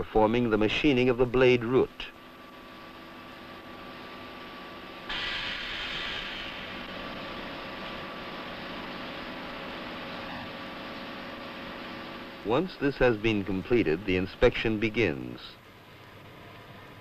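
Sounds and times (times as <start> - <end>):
machine hum: 0.0 - 17.0
loud machine hiss: 5.1 - 9.8.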